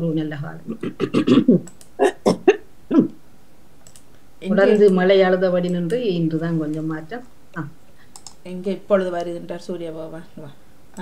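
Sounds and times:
person talking: 4.4 - 7.8, 8.4 - 11.0.

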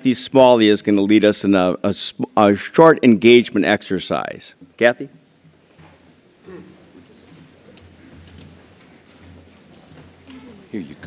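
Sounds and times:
low hall hum: 0.0 - 11.0
footsteps on stage: 4.6 - 10.8
chairs moving: 5.4 - 11.0.

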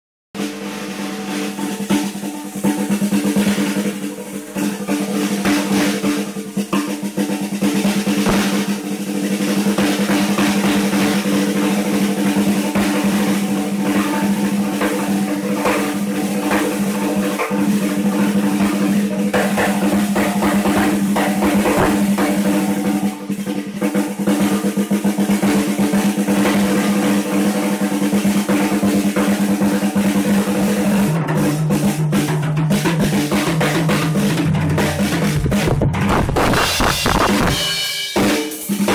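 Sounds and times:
bass drum: 0.4 - 24.4, 28.4 - 38.9
fast snare drum strokes: 0.4 - 38.9
lower-pitched drum: 0.4 - 38.9.

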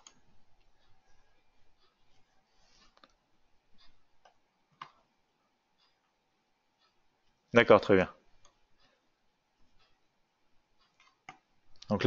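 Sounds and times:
computer mouse and keyboard clicks: 3.8 - 5.1, 10.8 - 11.9.

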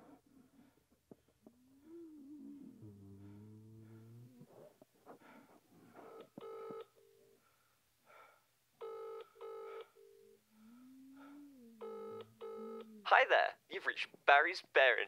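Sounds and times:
faint double-ring ringback tone: 11.8 - 12.9.

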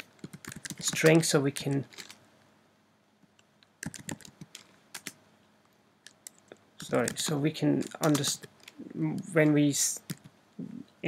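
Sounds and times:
typing on computer keyboard: 0.0 - 1.2, 3.8 - 5.2, 6.0 - 8.8, 10.0 - 10.3.

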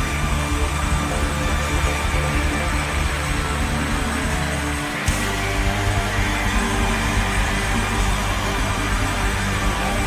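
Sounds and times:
sustained bass line: 0.0 - 10.0.

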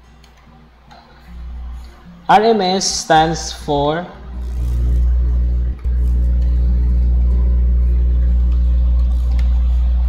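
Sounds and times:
steady low hum: 3.1 - 10.0.

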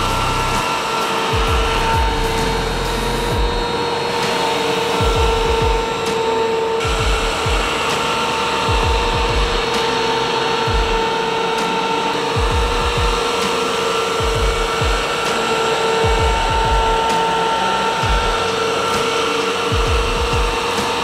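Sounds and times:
cutter motor whining: 0.0 - 21.0
vacuum humming: 0.0 - 21.0.

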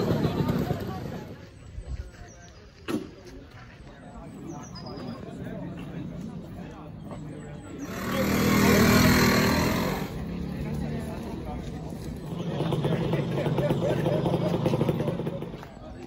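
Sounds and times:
people talking: 0.0 - 16.0
two-stroke scooter engines: 0.0 - 16.0.

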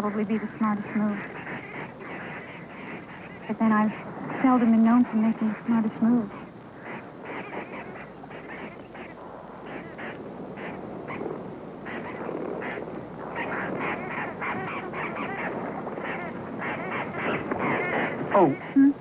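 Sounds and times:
ducks quacking: 0.0 - 18.9.

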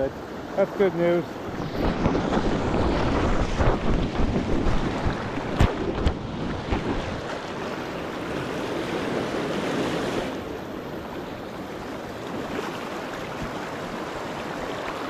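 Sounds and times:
river water rushing over rapids: 0.0 - 15.0
wind buffeting microphone: 1.4 - 15.0.

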